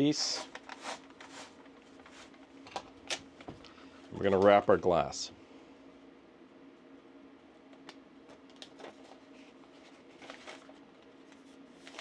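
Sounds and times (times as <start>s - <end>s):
low steady hum: 0.0s - 12.0s
paper rustling: 8.6s - 12.0s.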